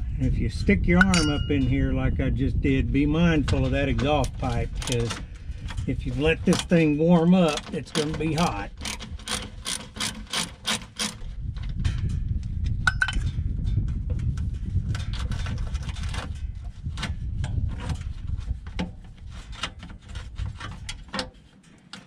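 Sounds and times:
low rumble: 0.0 - 7.2, 11.2 - 19.4
small clicks and rubbing: 3.4 - 11.7, 14.2 - 22.0
socket ratchet clicking: 7.5 - 11.2.

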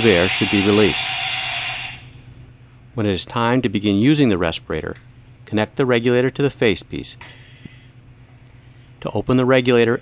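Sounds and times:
compressed air hissing from valve: 0.0 - 2.3.

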